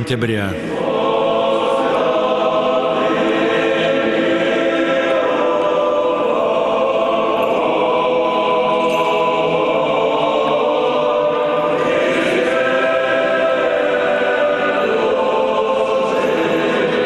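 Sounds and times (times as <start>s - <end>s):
choir singing unaccompanied chant: 0.6s - 17.0s.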